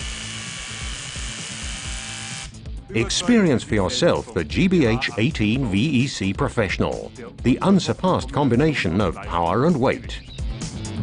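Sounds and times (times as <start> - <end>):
rotary hammer drilling into concrete: 0.0 - 2.5.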